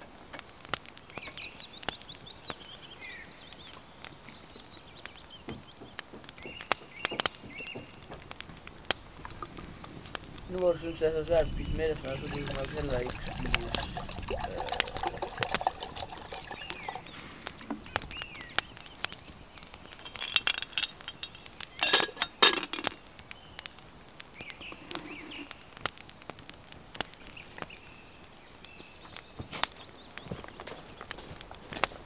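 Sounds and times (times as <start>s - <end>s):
wood fire crackling: 0.0s - 32.0s
liquid pouring into pot: 11.8s - 17.2s
iron lid clinking: 20.0s - 23.0s.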